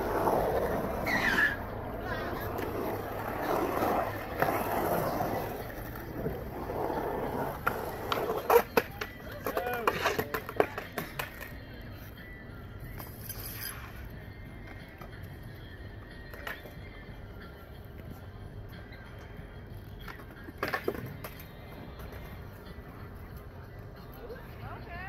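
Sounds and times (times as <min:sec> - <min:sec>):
outdoor background noise: 0:00.0 - 0:25.0.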